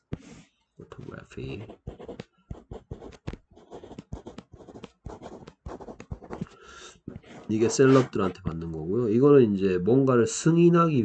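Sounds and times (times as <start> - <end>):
pen scratching on paper: 0.1 - 8.4.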